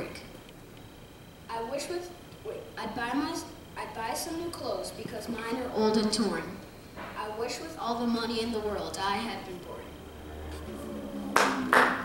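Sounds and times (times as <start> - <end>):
hands clapping: 11.3 - 12.0.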